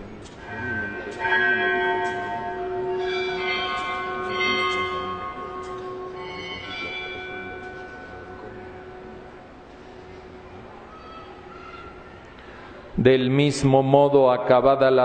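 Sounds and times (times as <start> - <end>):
bells ringing: 0.0 - 12.0.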